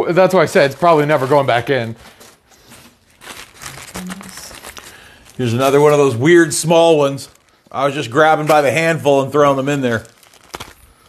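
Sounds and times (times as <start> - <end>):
plastic bag crinkling: 0.6 - 11.0.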